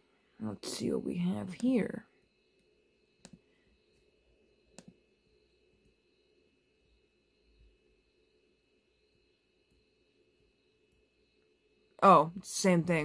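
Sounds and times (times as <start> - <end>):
computer mouse clicking: 2.6 - 3.4, 4.7 - 5.0.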